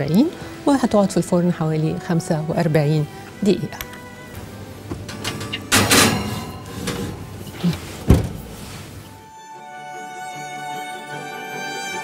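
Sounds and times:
oven door banging shut: 4.9s - 7.4s, 8.0s - 8.5s
oven door opening: 4.9s - 8.6s
dish sliding into oven: 4.9s - 9.1s.

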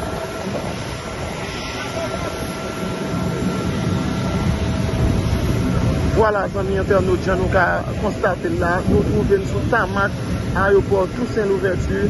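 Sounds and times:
jet airliner roar: 0.0s - 12.0s.

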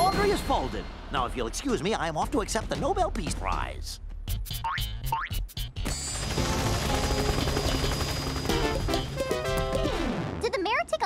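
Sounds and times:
music: 0.0s - 11.0s
cartoon helicopter whirring: 6.0s - 9.4s.

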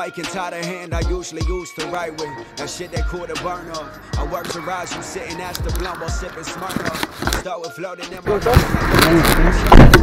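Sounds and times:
low vehicle rumble: 2.0s - 6.7s.

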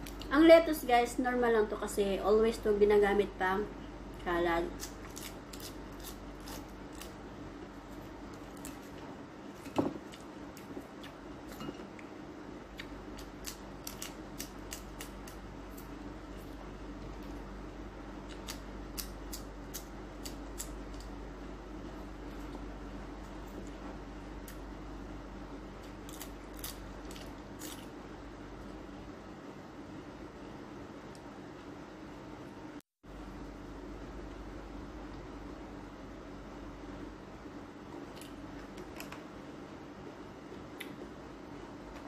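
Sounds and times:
faint steady hum: 0.0s - 42.0s
person chewing lettuce: 4.7s - 11.6s, 12.7s - 17.5s, 18.2s - 21.2s, 25.8s - 28.0s.

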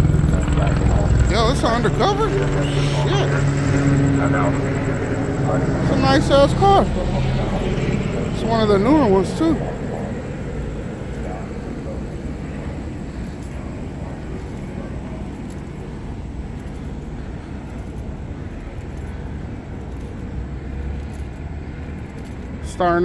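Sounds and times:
helicopter rumble overhead: 0.0s - 23.0s.

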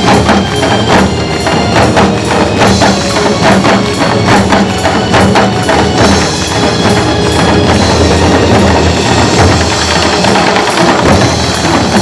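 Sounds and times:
drums struck with sticks: 0.0s - 12.0s.

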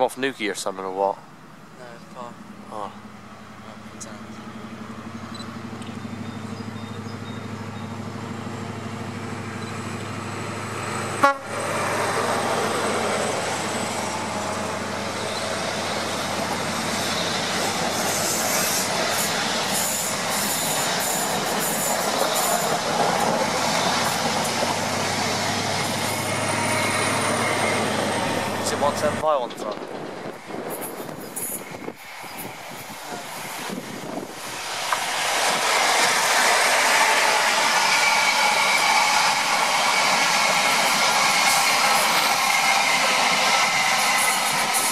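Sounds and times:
diesel train engine hum: 0.0s - 44.9s
train coaches rushing past: 3.6s - 44.9s.

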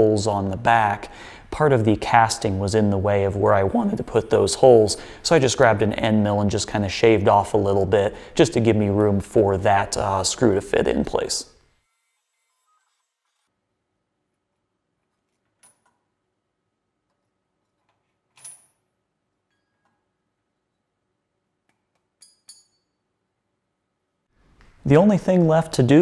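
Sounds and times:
faint metallic clinks: 18.3s - 20.9s, 22.2s - 23.1s.

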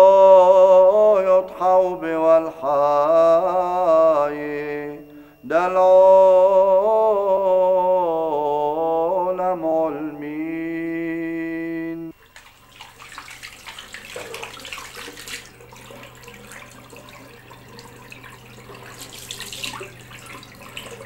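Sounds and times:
faint steady hum: 0.0s - 21.0s
tap water running into sink: 12.2s - 21.0s.

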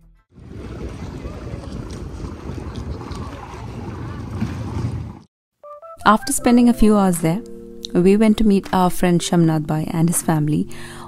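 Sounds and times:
sea wash: 0.4s - 5.3s
wind buffeting microphone: 0.4s - 5.3s.

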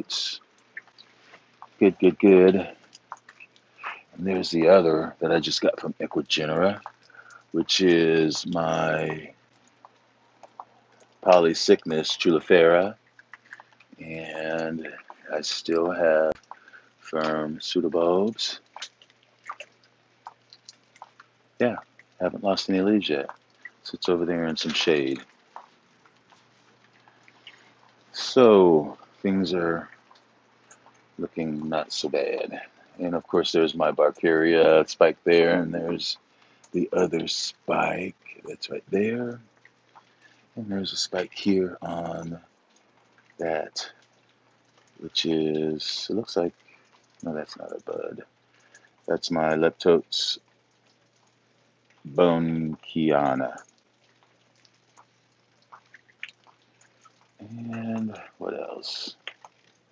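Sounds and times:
faint background hiss: 0.0s - 59.9s.

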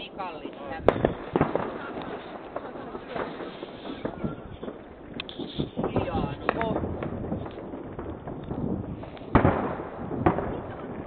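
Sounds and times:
faint firework pops: 0.8s - 11.0s
firework bang with echo: 0.8s - 11.0s.

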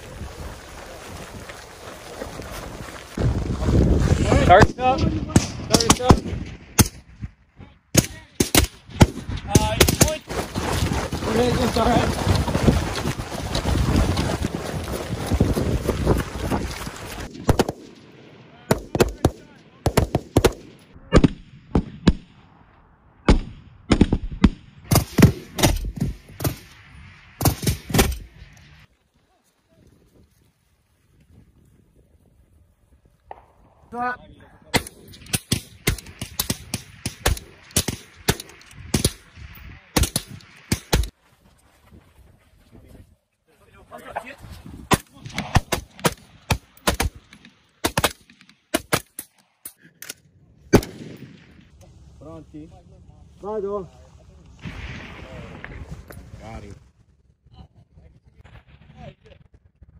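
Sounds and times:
rifle gunfire: 17.3s - 22.3s, 34.7s - 39.3s, 50.7s - 51.7s.

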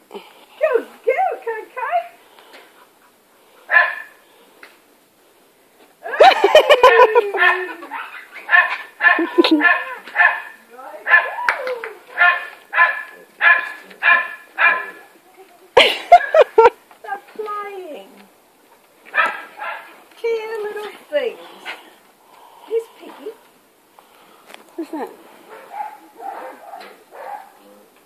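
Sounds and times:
dog barking: 3.7s - 4.2s, 7.4s - 11.3s, 12.1s - 15.0s, 19.1s - 19.9s, 25.5s - 27.7s.

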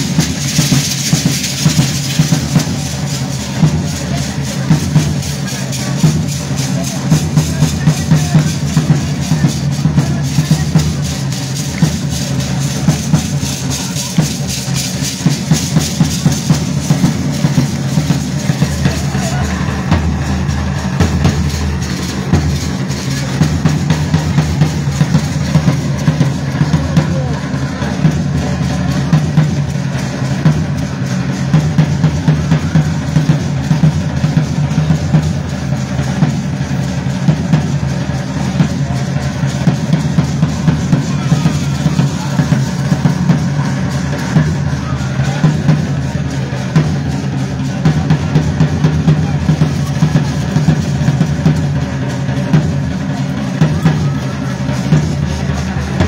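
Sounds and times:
bass drums beating: 0.0s - 56.0s.

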